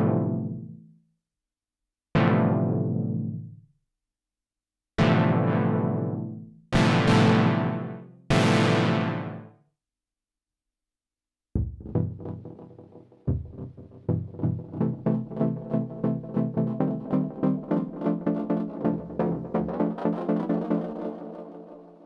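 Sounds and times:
synthesizer chords: 11.6 - 22.0.

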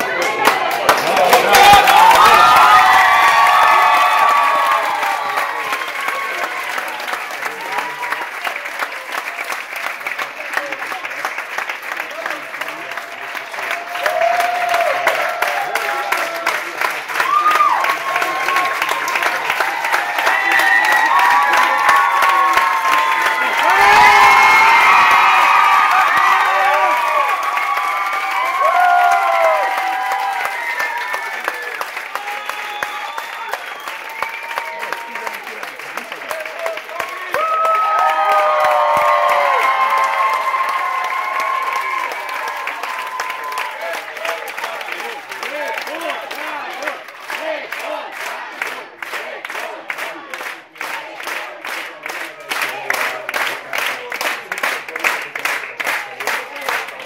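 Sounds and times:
crowd clapping and cheering: 0.0 - 57.0.

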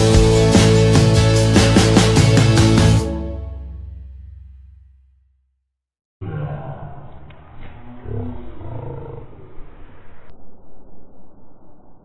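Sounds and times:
person growling roar: 6.2 - 9.6.

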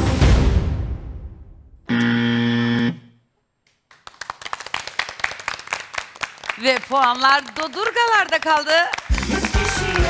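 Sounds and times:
game show buzzer: 1.9 - 3.2
audience clapping: 3.7 - 10.0.

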